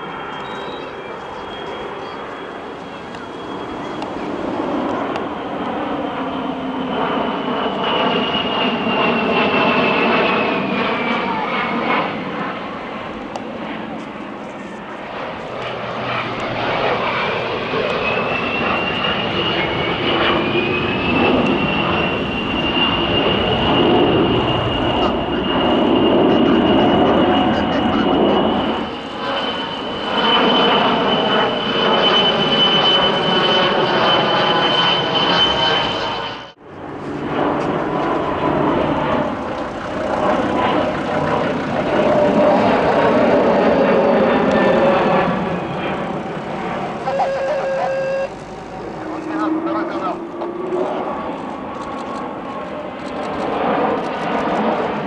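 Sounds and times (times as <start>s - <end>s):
airliner jet engines: 0.0s - 55.0s
jet engines with high whine: 0.0s - 55.0s.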